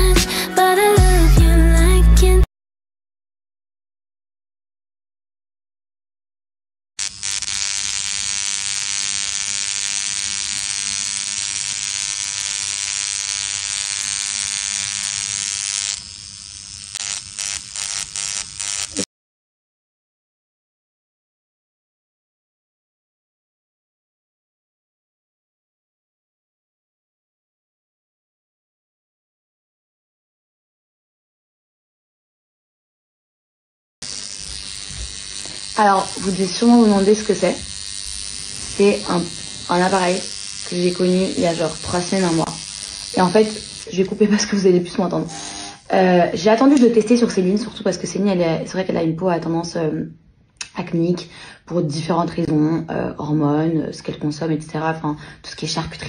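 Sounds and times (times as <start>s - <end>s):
skincare device buzzing: 7.0s - 19.1s, 34.0s - 47.8s
woman speaking: 35.8s - 37.6s, 38.8s - 42.6s, 43.2s - 56.0s.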